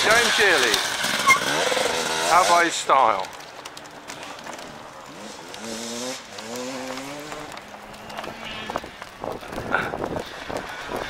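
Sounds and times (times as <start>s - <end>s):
motorcycle engine accelerating: 0.0s - 2.7s, 4.4s - 11.0s.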